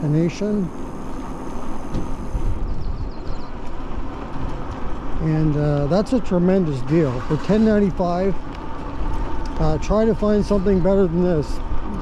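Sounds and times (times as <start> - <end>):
tyres on wet pavement: 0.0 - 12.0
wind rumbling on microphone: 0.7 - 12.0.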